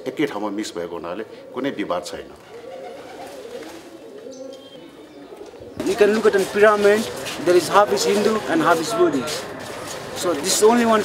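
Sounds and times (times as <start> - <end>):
pigeons cooing: 0.0 - 11.0
high bird chirp: 4.3 - 5.9.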